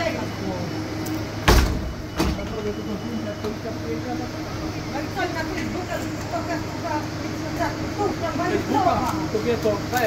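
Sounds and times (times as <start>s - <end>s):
street background noise: 0.0s - 10.0s.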